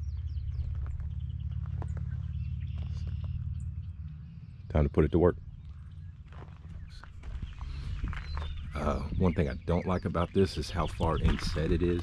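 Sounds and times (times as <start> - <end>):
steady low rumble: 0.0 - 12.0
footsteps on gravel: 0.4 - 3.4, 5.7 - 9.1, 10.6 - 12.0.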